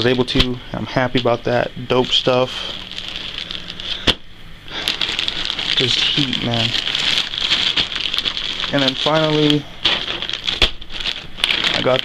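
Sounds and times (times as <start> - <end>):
plastic bag crinkling: 2.0 - 12.0.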